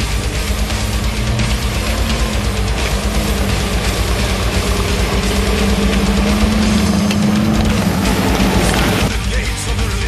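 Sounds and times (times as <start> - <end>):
tracked vehicle engine running: 0.0 - 9.2.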